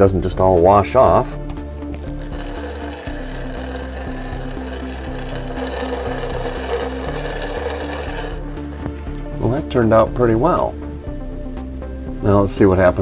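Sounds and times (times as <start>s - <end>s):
background music with held notes: 0.0s - 13.0s
tap water running onto tile: 2.0s - 9.4s.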